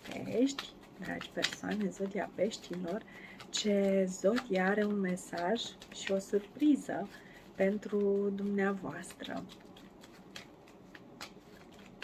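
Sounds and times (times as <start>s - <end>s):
cards being shuffled: 0.0s - 12.0s
cards clicking together: 0.2s - 6.5s, 9.0s - 12.0s.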